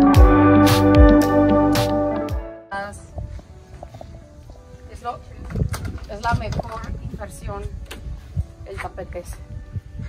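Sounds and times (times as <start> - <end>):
faint background music: 2.2 - 10.0.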